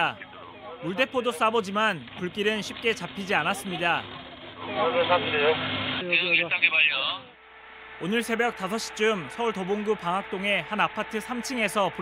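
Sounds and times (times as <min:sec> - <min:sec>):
steady low hum: 0:07.3 - 0:12.0.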